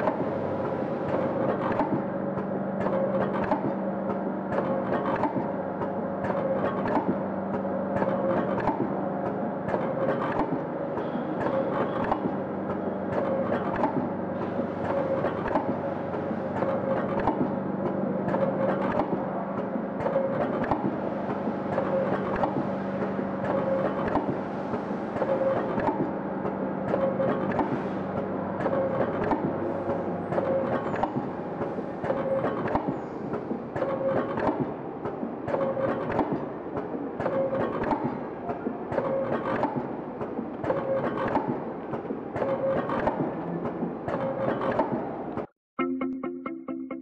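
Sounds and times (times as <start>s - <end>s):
machine mechanism clicking: 1.0s - 24.4s, 25.1s - 45.5s.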